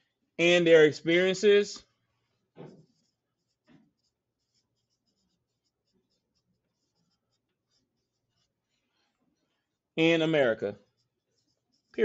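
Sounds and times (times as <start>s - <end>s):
pencils scratching on paper: 2.4s - 12.0s.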